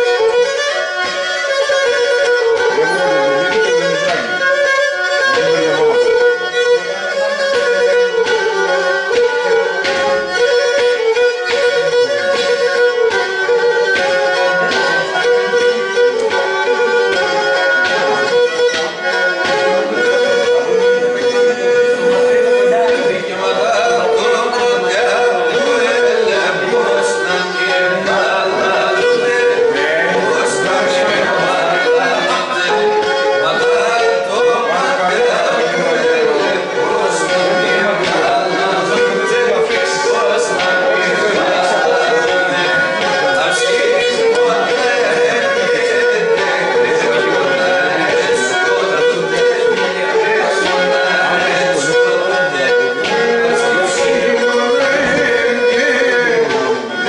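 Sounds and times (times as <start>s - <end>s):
bowed fiddle melody: 0.0s - 57.0s.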